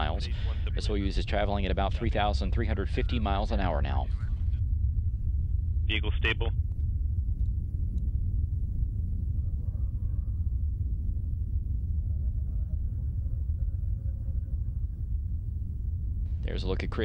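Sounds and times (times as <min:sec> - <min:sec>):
faint murmur: 0:00.0 - 0:04.6, 0:05.9 - 0:06.5, 0:09.3 - 0:17.0
deep rumble: 0:00.0 - 0:17.0.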